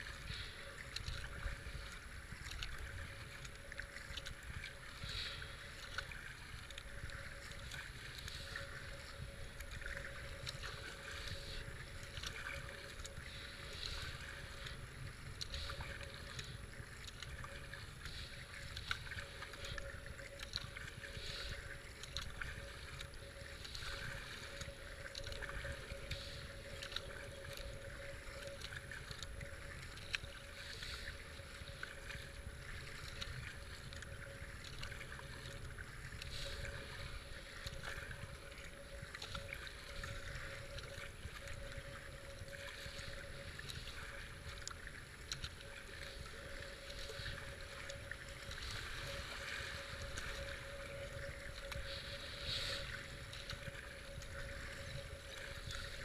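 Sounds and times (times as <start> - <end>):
faint steady hum: 0.0 - 56.0
kayak paddle strokes splashing: 0.0 - 56.0
wind rumble on microphone: 0.0 - 56.0.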